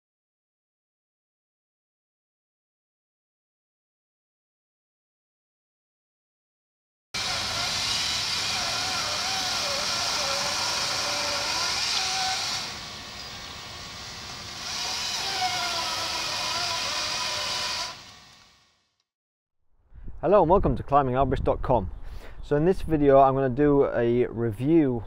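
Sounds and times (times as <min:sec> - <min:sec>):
chainsaw running: 0:07.2 - 0:18.6.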